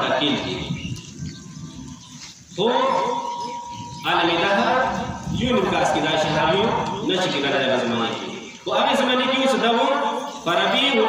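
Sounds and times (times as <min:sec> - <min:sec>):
man chanting over loudspeaker: 0:00.0 - 0:00.9, 0:02.5 - 0:11.0
steady high tone: 0:02.7 - 0:06.0.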